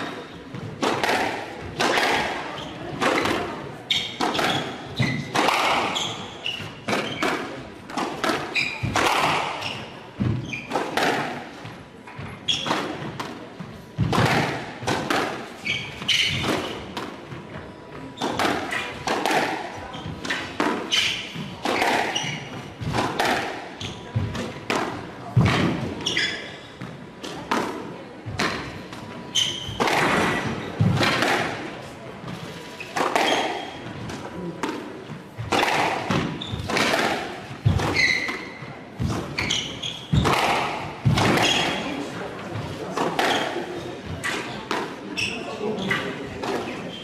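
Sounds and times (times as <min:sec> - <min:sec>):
shoes squeaking on wooden floor: 0:03.8 - 0:07.4, 0:08.2 - 0:11.1, 0:12.1 - 0:13.1, 0:15.5 - 0:19.1, 0:19.8 - 0:23.0, 0:25.8 - 0:27.0, 0:28.4 - 0:31.2, 0:32.3 - 0:34.5, 0:35.4 - 0:47.0
squash ball knocks: 0:40.1 - 0:41.8.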